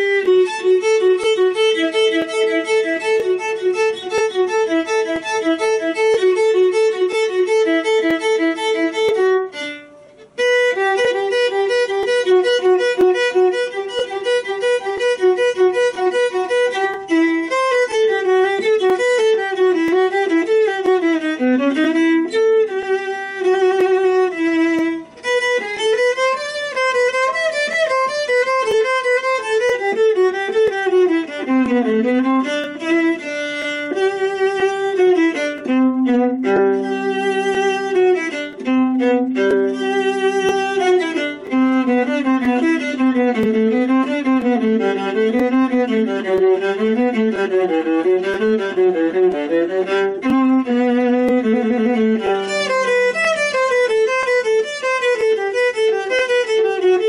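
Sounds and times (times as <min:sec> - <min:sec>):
viola playing quick notes: 0:00.0 - 0:57.0.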